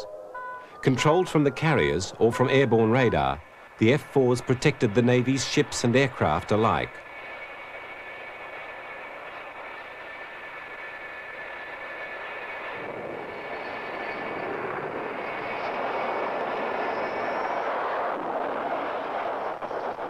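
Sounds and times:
faint higher whine rising: 0.0s - 20.0s
jet engine whine: 0.0s - 20.0s.

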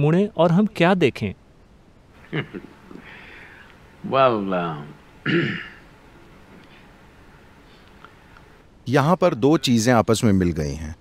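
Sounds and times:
man clearing throat: 5.2s - 5.8s.

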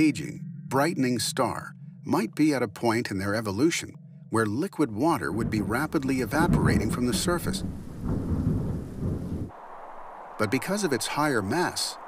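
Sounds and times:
thunder rumbling: 0.0s - 12.0s
rain hiss: 5.7s - 12.0s.

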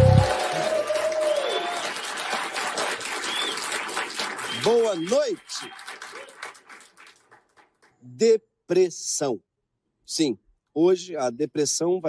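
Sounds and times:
theme music held note: 0.0s - 0.7s
audience applauding: 0.0s - 8.0s.

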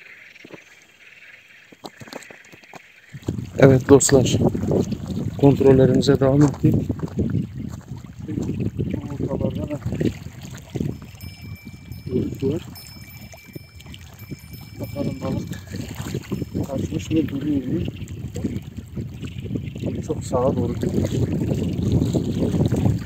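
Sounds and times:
faint high steady tone: 10.2s - 17.8s.

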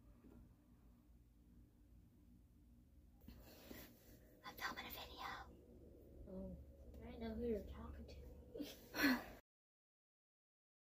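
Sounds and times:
woman whispering: 4.4s - 5.5s.

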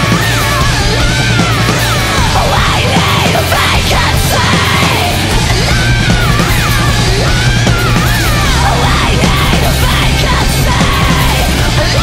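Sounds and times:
distorted rock with yelled vocals: 0.0s - 12.0s.

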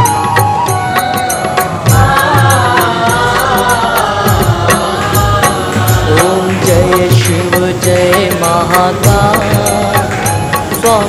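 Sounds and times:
person singing devotional song: 0.1s - 11.0s
drums and bass beat: 1.6s - 11.0s.

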